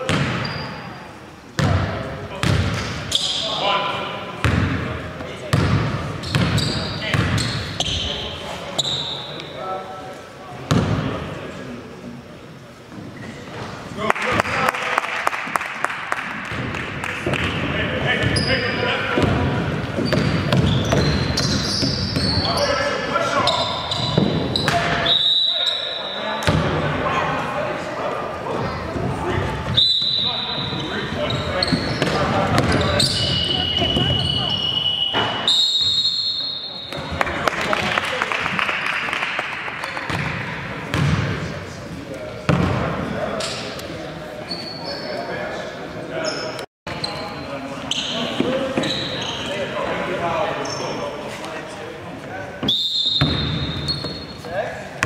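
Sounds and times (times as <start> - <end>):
sneaker squeaks: 0.0 - 1.0, 2.4 - 3.6, 5.5 - 9.7, 13.0 - 13.8, 18.1 - 26.6, 28.5 - 37.2, 44.4 - 45.4, 46.2 - 49.7, 50.6 - 51.2, 52.6 - 54.6
people talking and calling out: 17.4 - 37.8.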